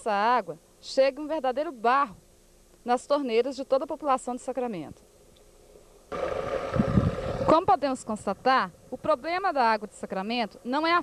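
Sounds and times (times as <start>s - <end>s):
low rumble: 6.0s - 9.3s
water rushing from a pipe: 6.1s - 7.6s.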